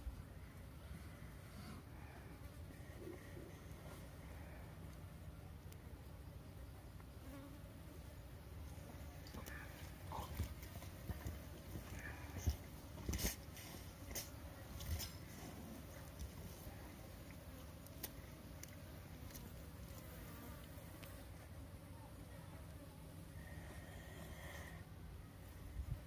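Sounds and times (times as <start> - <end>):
flies buzzing: 2.3 - 25.6.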